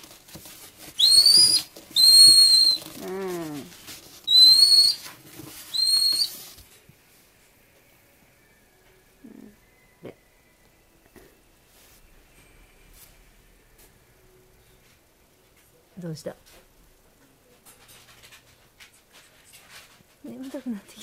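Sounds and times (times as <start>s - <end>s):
otter pup squeaking: 1.0s - 5.1s, 5.7s - 6.5s.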